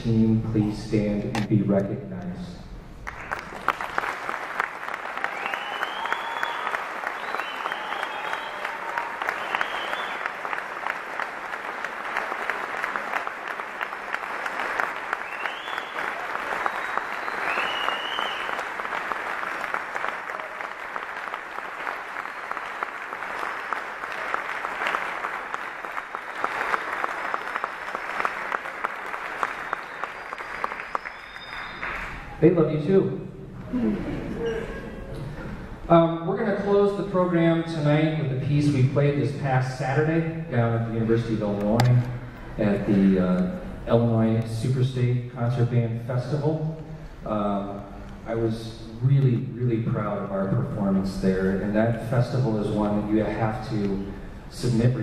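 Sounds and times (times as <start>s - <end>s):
audience applauding: 3.0s - 32.5s
high cheers: 4.9s - 32.4s.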